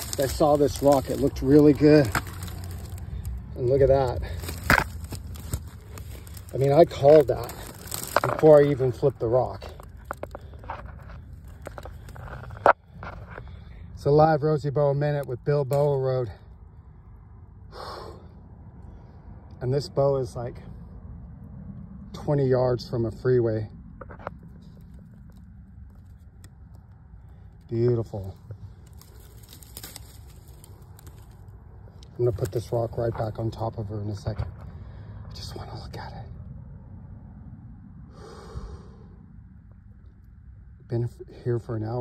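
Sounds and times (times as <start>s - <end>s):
rustling in dry grass: 0.0s - 13.7s, 24.1s - 34.8s
low steady rumble: 0.0s - 42.0s.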